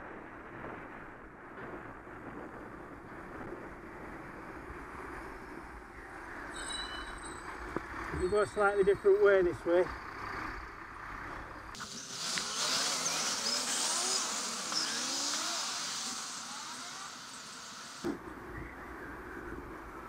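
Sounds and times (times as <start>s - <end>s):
vehicle engines pulling away: 4.3s - 18.2s
loud hiss: 11.8s - 18.2s.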